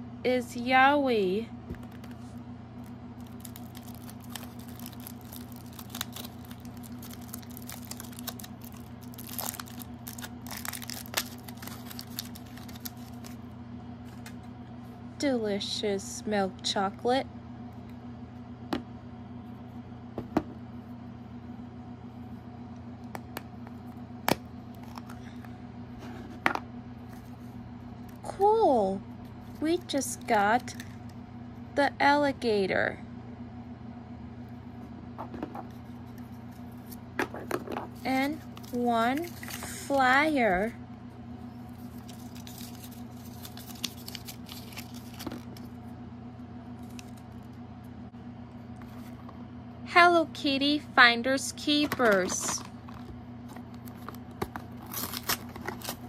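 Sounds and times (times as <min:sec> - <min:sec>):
steady low hum: 0:00.0 - 0:56.0
plastic packaging clicks and snaps: 0:03.4 - 0:13.3.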